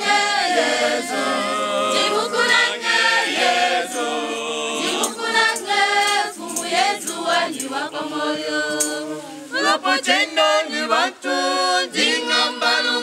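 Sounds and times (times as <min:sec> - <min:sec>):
choir singing in parts: 0:00.0 - 0:13.0.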